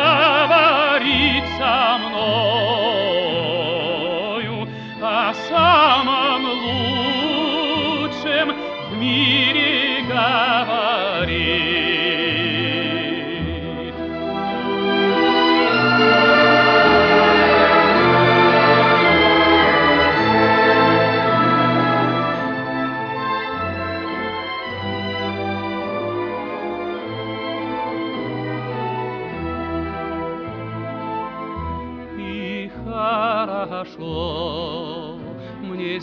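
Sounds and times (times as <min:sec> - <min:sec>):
low instrumental accompaniment: 0:00.0 - 0:36.0
organ-like chords: 0:11.2 - 0:33.0.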